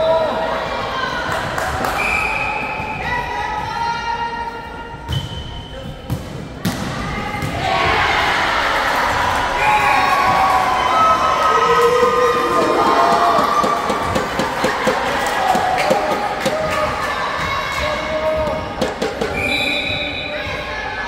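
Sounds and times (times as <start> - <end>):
crowd shouting and cheering: 0.0 - 5.1, 6.8 - 21.0.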